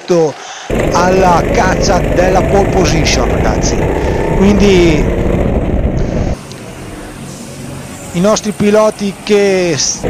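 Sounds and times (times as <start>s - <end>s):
go-kart engine running close: 0.7s - 8.8s
distant kart engine passing: 0.7s - 10.0s.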